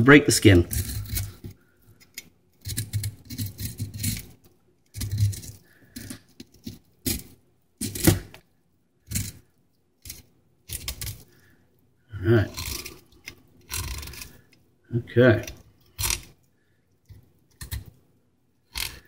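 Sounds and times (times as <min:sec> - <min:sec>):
knife scraping fish skin: 0:00.6 - 0:08.4, 0:10.0 - 0:11.3, 0:12.5 - 0:14.6, 0:18.7 - 0:19.0.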